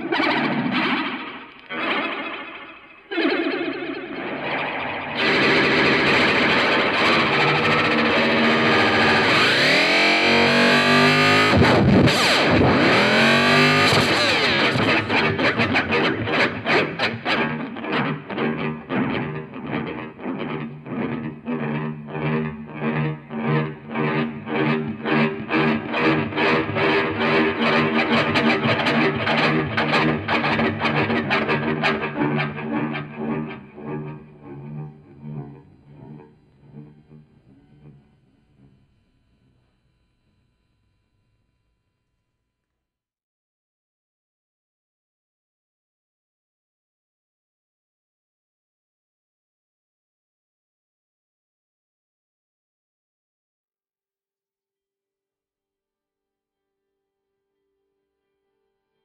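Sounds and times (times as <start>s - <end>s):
distorted electric guitar: 0.0s - 41.4s.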